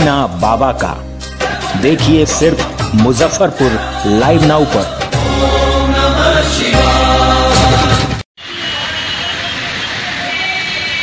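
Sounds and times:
devotional music jingle: 0:00.9 - 0:08.2.

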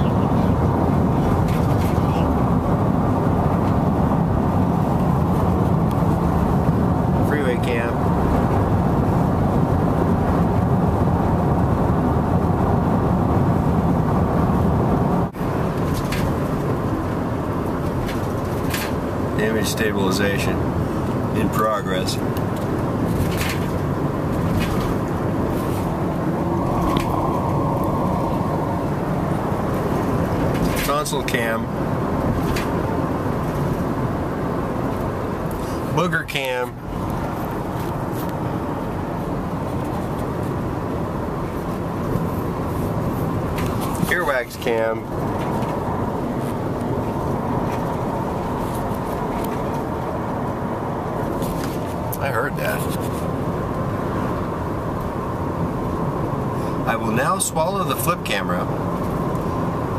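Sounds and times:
road and engine noise in car: 0:00.0 - 0:59.9.

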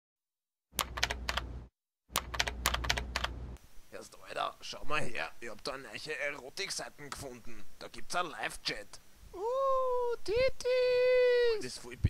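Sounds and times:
typing on computer keyboard: 0:00.8 - 0:01.5, 0:02.2 - 0:03.3.

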